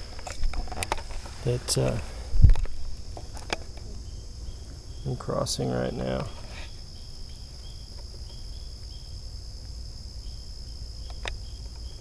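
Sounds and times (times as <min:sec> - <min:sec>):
wind and handling rumble: 0:00.0 - 0:06.7
insect chorus: 0:00.0 - 0:12.0.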